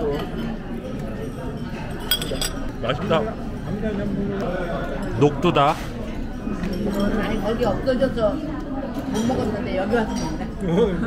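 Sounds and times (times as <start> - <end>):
metal chopsticks clinking tableware: 1.6 - 2.7.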